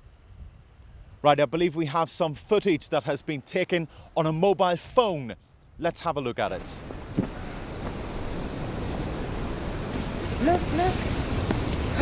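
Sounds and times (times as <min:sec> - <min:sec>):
surf on rocky shore: 0:06.5 - 0:12.0
wind on microphone: 0:06.8 - 0:12.0.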